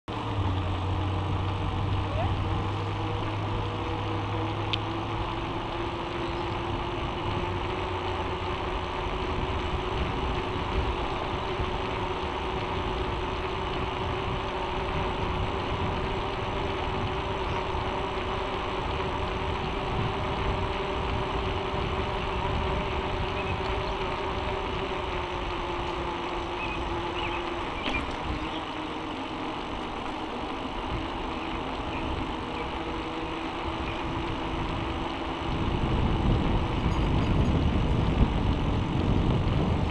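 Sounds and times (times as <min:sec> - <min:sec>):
bicycle tyre hum on asphalt: 0:00.0 - 0:39.9
wind on microphone: 0:01.3 - 0:39.9.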